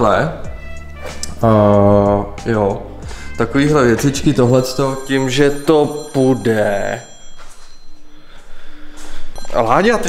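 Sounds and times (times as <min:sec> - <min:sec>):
phone ringing low tones: 0:03.8 - 0:10.0.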